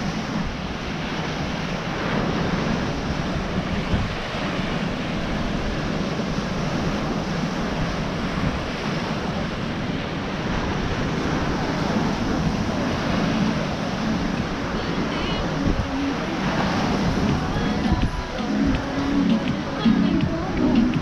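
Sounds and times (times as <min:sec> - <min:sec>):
ocean surf on beach: 0:00.0 - 0:21.0
wind rumbling on microphone: 0:00.0 - 0:21.0.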